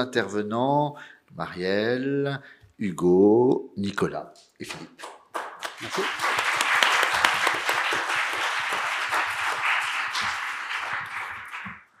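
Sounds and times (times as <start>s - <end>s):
audience applauding: 5.0s - 12.0s.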